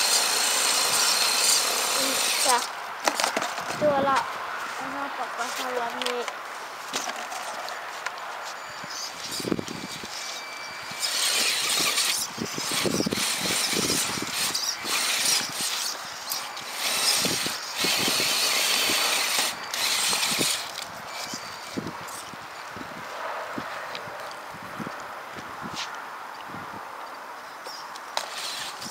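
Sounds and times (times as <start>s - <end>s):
toy car motor whining: 0.0s - 3.7s, 8.6s - 22.4s, 28.2s - 28.9s.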